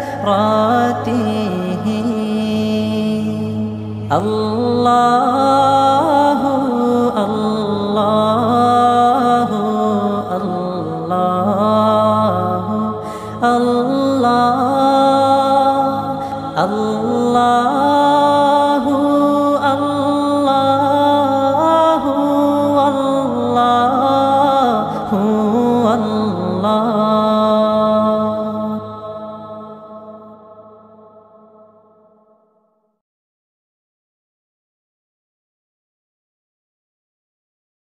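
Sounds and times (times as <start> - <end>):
man singing melismatic notes: 0.0 - 31.7.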